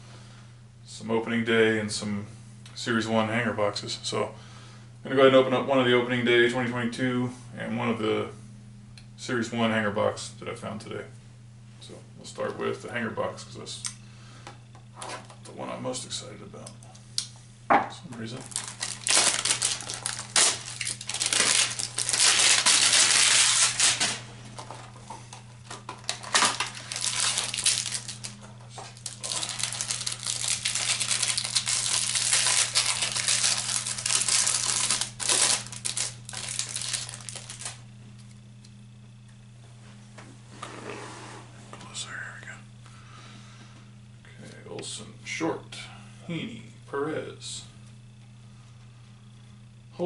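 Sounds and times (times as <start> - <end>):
plastic wrapper crinkling and tearing: 18.4 - 24.3, 25.6 - 37.8
quiet handling of packaging: 24.4 - 40.0.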